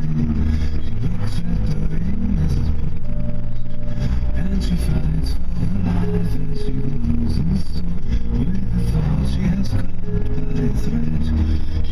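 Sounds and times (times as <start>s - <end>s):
car engine and road rumble: 0.0s - 11.9s.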